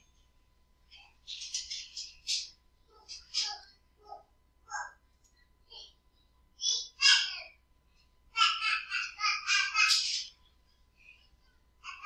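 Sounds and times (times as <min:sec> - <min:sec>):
distant child's voice: 0:02.9 - 0:06.0.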